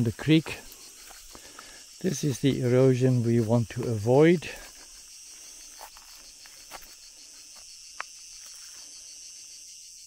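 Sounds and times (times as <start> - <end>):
insects chirring: 0.0 - 10.0.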